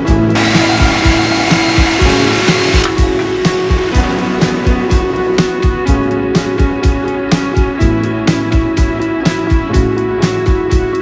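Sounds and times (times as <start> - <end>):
background music with steady beat: 0.0 - 11.0
power tool cutting steel: 0.4 - 4.6.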